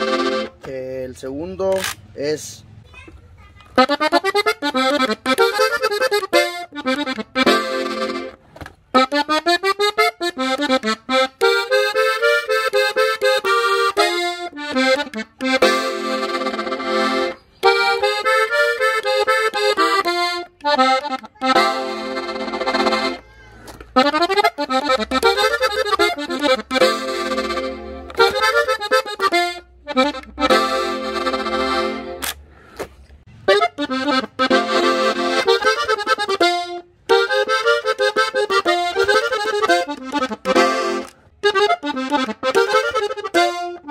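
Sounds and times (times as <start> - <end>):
button accordion playing runs: 0.0 - 0.6, 3.8 - 32.4, 33.3 - 43.9.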